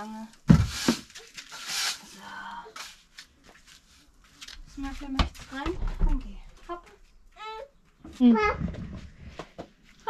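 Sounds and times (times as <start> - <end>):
broom sweeping concrete floor: 0.5 - 4.1.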